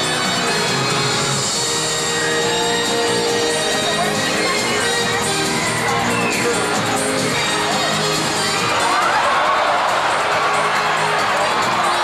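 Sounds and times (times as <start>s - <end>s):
music over sound system: 0.0s - 12.0s.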